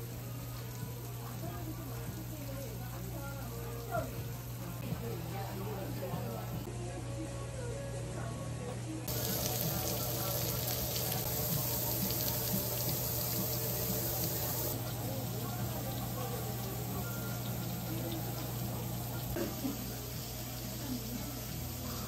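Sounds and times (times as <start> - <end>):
meat sizzling on a grill: 0.0 - 4.8, 9.1 - 22.0.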